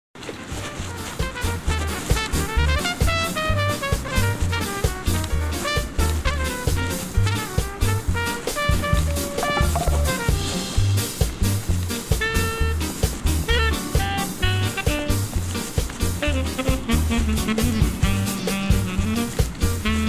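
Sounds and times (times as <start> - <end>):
upbeat swing music: 0.2 - 20.0.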